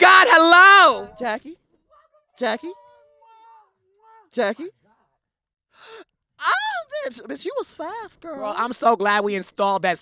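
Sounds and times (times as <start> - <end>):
person exclaiming: 0.0 - 1.2
person gasping: 5.8 - 6.1.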